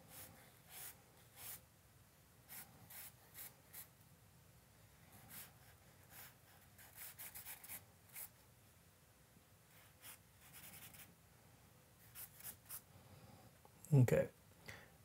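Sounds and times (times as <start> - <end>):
charcoal scratching on paper: 0.1 - 1.6, 2.5 - 3.9, 5.2 - 8.3, 9.8 - 11.1, 12.0 - 12.8.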